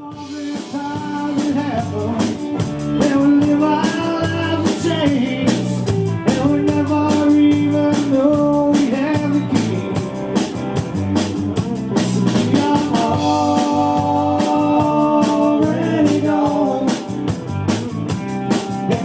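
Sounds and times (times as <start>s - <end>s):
man singing long notes: 0.0s - 10.1s, 11.6s - 17.3s
drum kit beat: 0.0s - 19.0s
electric bass guitar: 0.0s - 19.0s.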